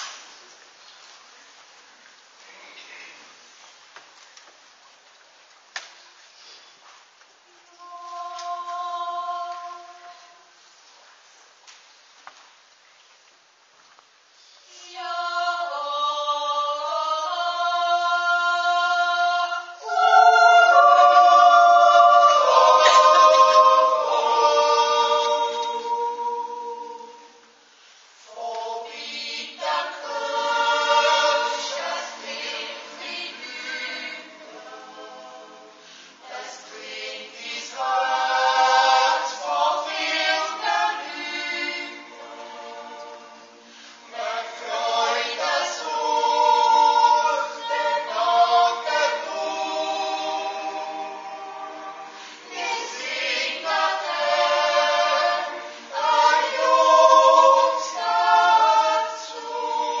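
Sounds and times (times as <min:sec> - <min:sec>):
choir yodeling a cappella: 0:07.7 - 0:10.6, 0:14.7 - 1:00.0.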